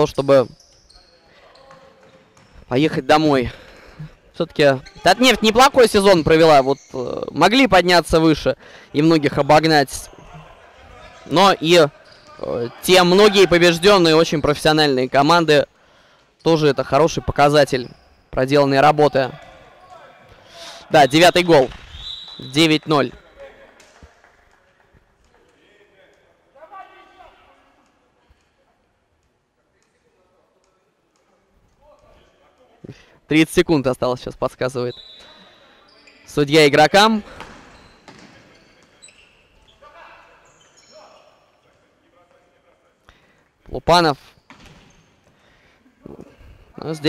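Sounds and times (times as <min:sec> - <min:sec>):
faint hall noise: 0:00.0 - 0:47.0.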